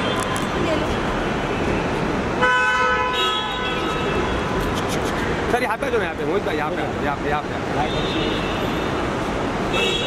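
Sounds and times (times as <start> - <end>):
road traffic noise: 0.0 - 10.0
car horn honk: 2.4 - 4.5, 9.7 - 10.0.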